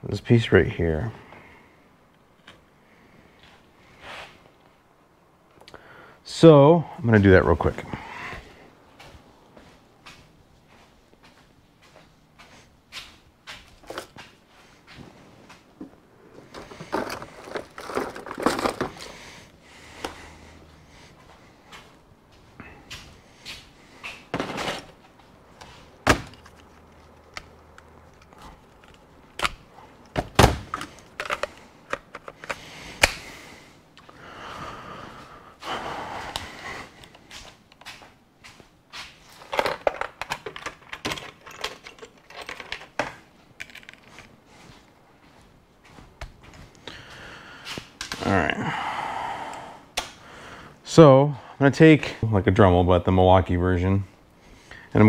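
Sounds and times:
tools clattering on hard surface: 16.5s - 19.2s, 39.4s - 44.3s.

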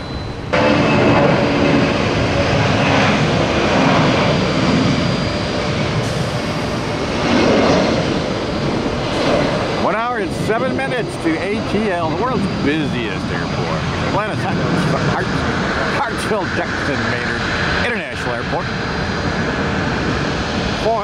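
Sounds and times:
jet engines at takeoff power: 0.0s - 21.0s.

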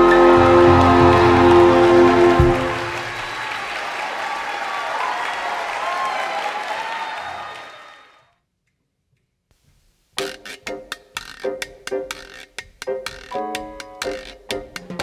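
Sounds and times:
jazz big band chord: 0.0s - 3.1s
audience applause: 0.0s - 8.3s.

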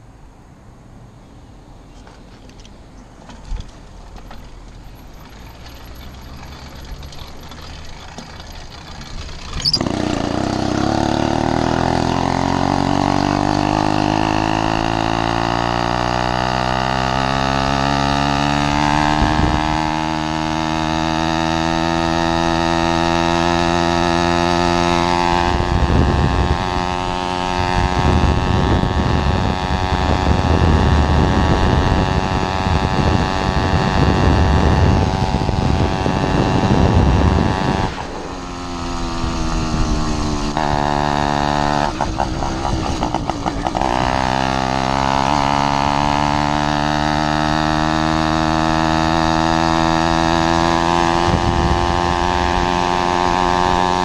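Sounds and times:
two-stroke engine at full throttle: 3.3s - 54.0s
wind buffeting microphone: 18.1s - 20.4s, 24.1s - 54.0s.

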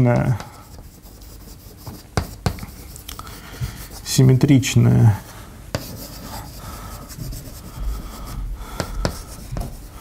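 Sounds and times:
chalk tapping on board: 0.0s - 4.1s, 5.7s - 10.0s
chalk scratching on chalkboard: 0.0s - 4.5s, 5.2s - 10.0s.

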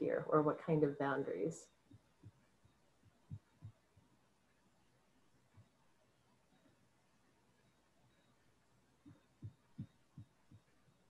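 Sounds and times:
soft low thumps: 3.0s - 4.1s, 9.0s - 10.8s.

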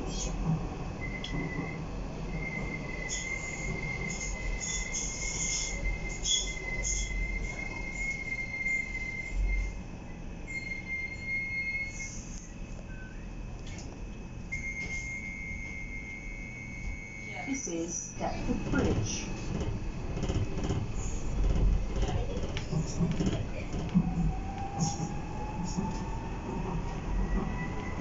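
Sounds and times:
wheels rumbling on rail: 0.0s - 9.9s, 16.4s - 28.0s
sharp high squeaks: 4.1s - 9.6s.

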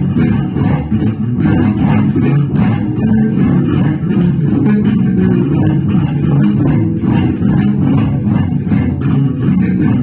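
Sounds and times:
funk bass guitar fingerstyle: 0.0s - 10.0s.

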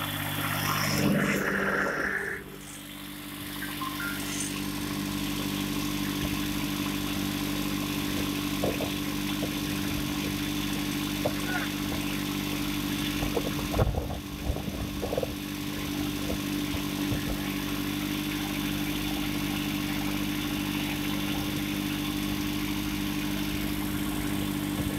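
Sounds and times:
tractor diesel engine running: 0.0s - 24.9s.

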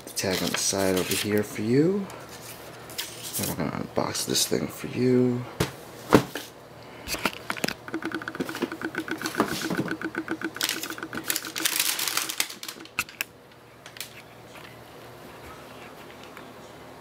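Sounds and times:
tissue paper crinkling: 10.7s - 12.9s.

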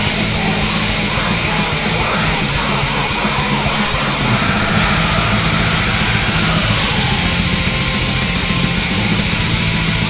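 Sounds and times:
distorted guitars: 0.0s - 10.0s
fast drumming: 0.0s - 10.0s.

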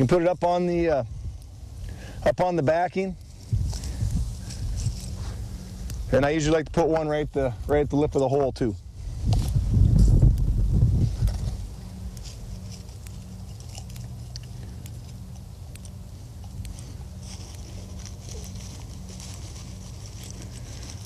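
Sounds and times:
rustling in dry corn stalks: 0.0s - 21.0s
steady low hum: 0.0s - 21.0s.

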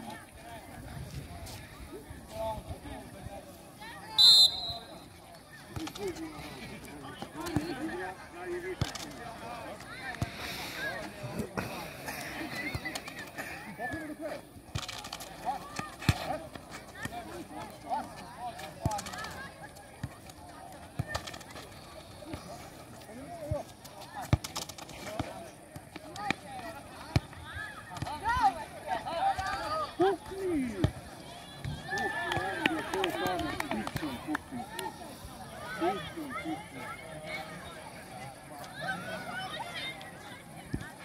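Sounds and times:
people shouting and calling out: 26.1s - 41.0s.

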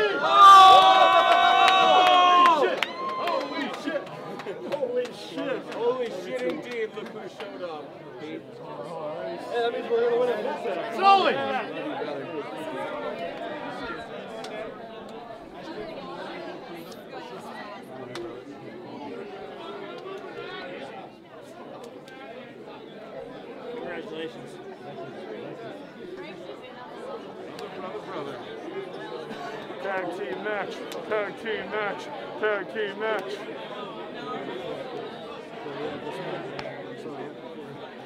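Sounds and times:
crowd chatter: 0.0s - 38.0s.

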